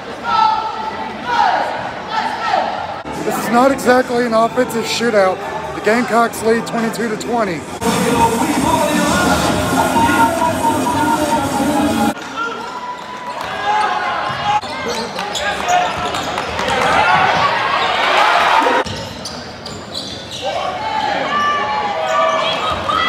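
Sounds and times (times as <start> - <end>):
crowd voices: 0.0 - 23.0
background music: 3.1 - 12.2.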